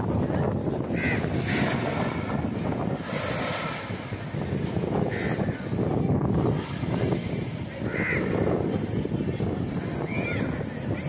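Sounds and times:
ocean surf on sandy shore: 0:00.0 - 0:11.0
wind buffeting microphone: 0:00.0 - 0:11.0.

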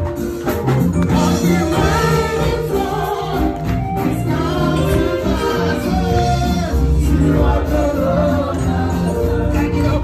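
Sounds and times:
live band with drum kit: 0:00.0 - 0:10.0
church choir singing gospel: 0:00.4 - 0:10.0.

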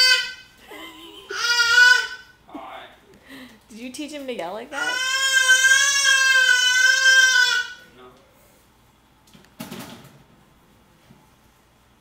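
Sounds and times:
toddler yelling: 0:00.0 - 0:00.5, 0:01.3 - 0:02.3, 0:04.7 - 0:07.8.

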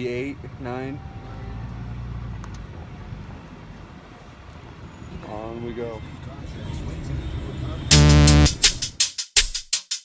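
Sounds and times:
vehicle engine and tyres rumbling: 0:00.0 - 0:07.9.

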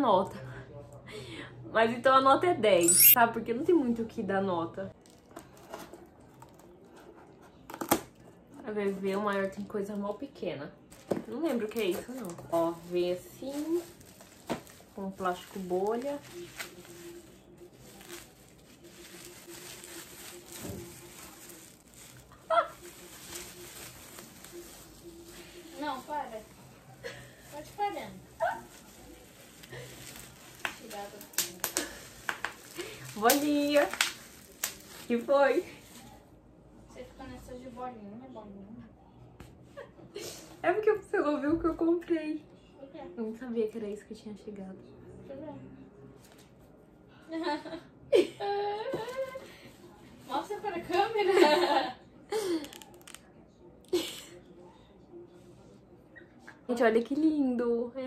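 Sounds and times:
bubble wrap crinkling: 0:05.0 - 0:07.0, 0:10.9 - 0:36.3, 0:52.5 - 0:53.3.

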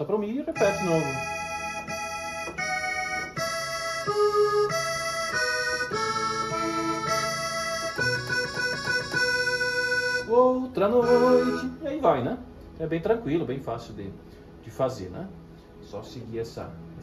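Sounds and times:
keyboard melody over sustained chords: 0:00.0 - 0:17.0.

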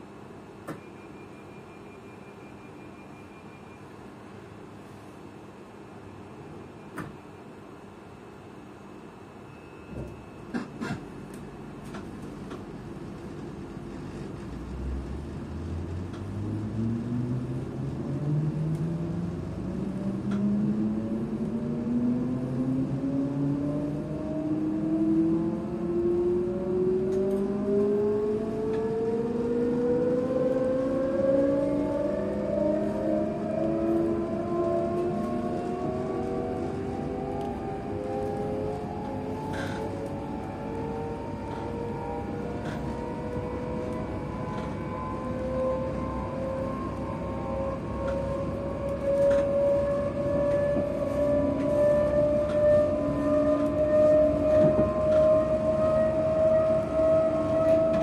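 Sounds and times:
train running rumble: 0:09.9 - 0:58.0
train traction motors whining: 0:14.4 - 0:58.0.

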